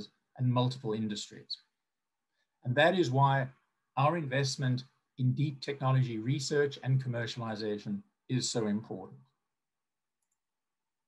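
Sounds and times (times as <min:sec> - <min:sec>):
man's voice: 0:00.0 - 0:01.6, 0:02.7 - 0:09.1.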